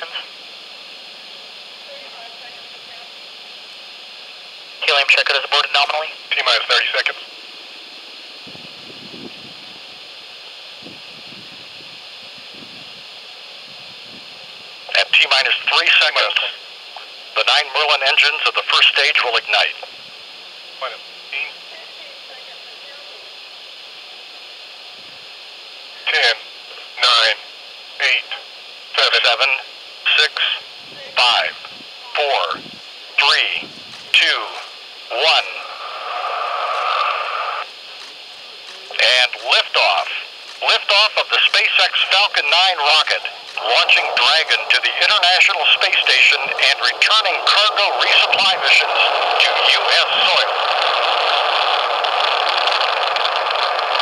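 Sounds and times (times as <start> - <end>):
radio commentary: 0.0 - 0.4, 1.8 - 3.1, 4.8 - 7.3, 14.9 - 19.9, 20.8 - 23.2, 26.0 - 37.7, 38.5 - 54.0
background hiss: 0.0 - 54.0
wind rumble on microphone: 8.4 - 9.9, 10.8 - 13.0, 30.8 - 32.8, 33.6 - 34.2.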